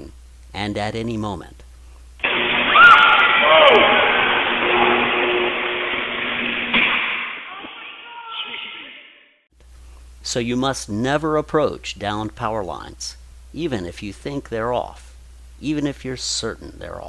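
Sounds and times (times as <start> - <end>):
crackling buzzing electrical arc: 2.2 - 7.6.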